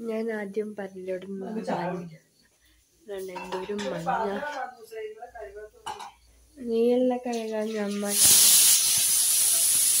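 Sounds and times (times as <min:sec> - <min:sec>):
woman speaking: 0:00.0 - 0:02.2
dishes and cutlery clinking: 0:03.2 - 0:04.2, 0:05.8 - 0:06.2.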